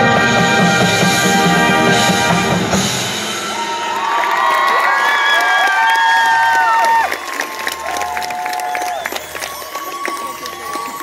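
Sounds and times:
marching band music: 0.0s - 4.1s
stadium crowd cheering: 2.4s - 11.0s
high-pitched yells and whoops: 3.6s - 9.2s.

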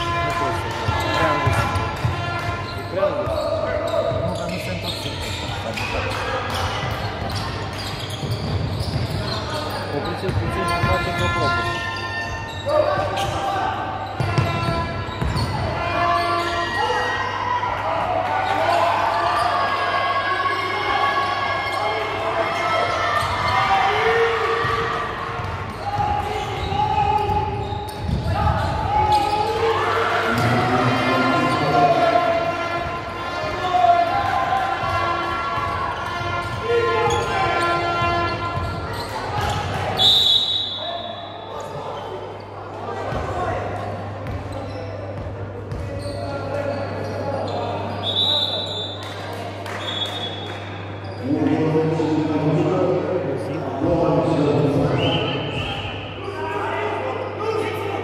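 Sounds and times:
basketball bouncing on wooden court: 10.2s - 11.2s, 14.2s - 15.6s, 24.7s - 28.9s, 44.2s - 46.0s.

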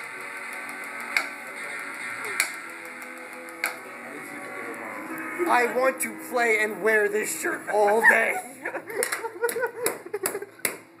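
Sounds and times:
people laughing: 7.6s - 10.6s.

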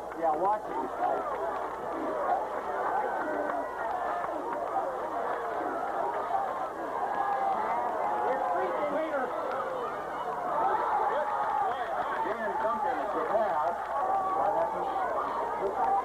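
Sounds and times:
crowd chattering and calling: 0.0s - 16.0s.

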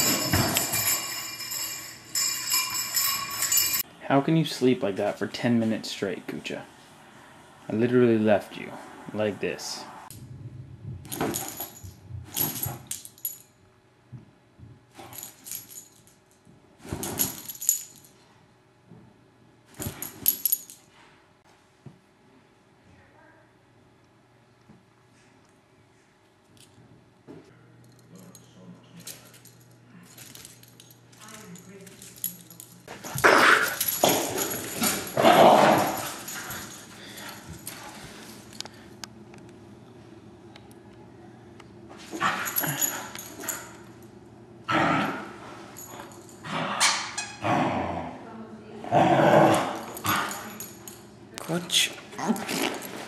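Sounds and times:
metal collar tags jingling: 0.0s - 3.9s, 11.1s - 13.5s, 15.0s - 16.4s, 17.0s - 18.2s, 19.8s - 20.9s, 27.8s - 38.6s, 42.2s - 44.0s, 45.8s - 46.4s, 49.8s - 51.1s.

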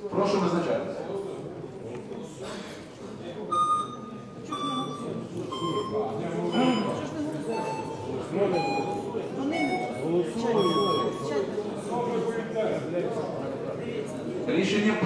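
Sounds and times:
murmur of voices: 0.0s - 15.0s.

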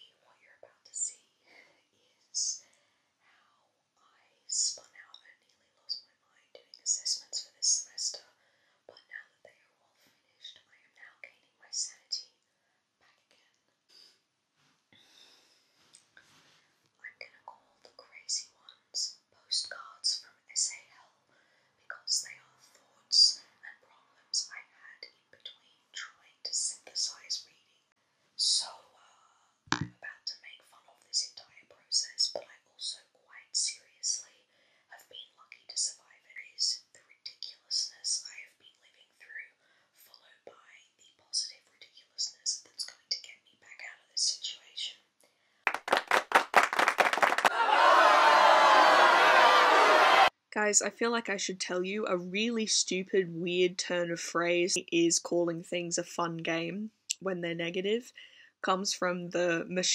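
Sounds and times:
woman whispering: 0.0s - 13.6s, 17.0s - 21.2s, 21.8s - 45.1s, 50.5s - 59.9s.

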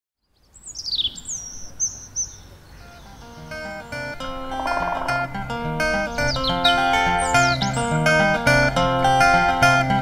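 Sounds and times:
bird whistling: 0.6s - 5.3s, 6.0s - 8.0s
plucked acoustic guitar music: 3.0s - 10.0s.

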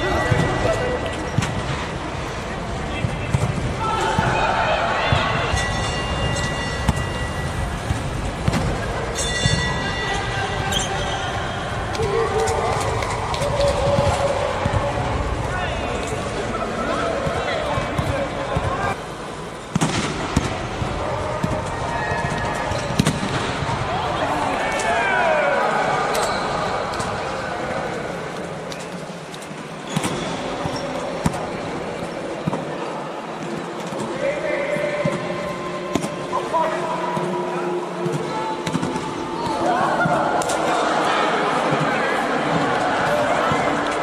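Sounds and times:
volleyballs being hit and bouncing: 0.0s - 24.1s, 27.9s - 44.0s
players chattering: 0.0s - 44.0s.

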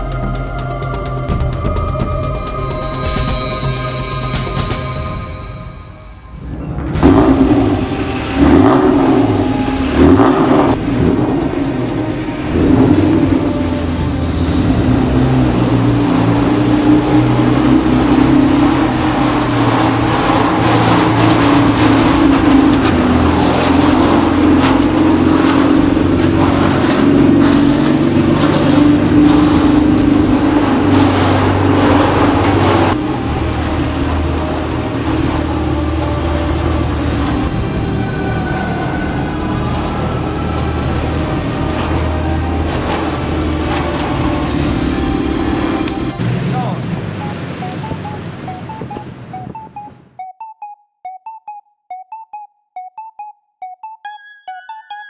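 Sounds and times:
music: 0.0s - 55.0s
car engine running: 6.8s - 50.1s.

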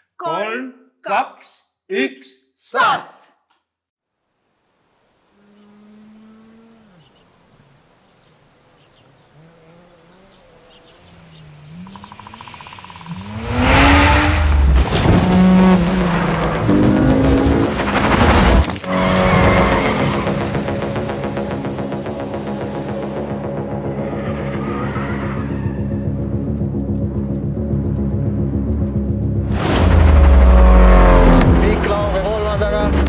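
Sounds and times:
car engine revving: 9.5s - 24.9s, 26.2s - 33.0s
sustained music tones: 18.9s - 33.0s.

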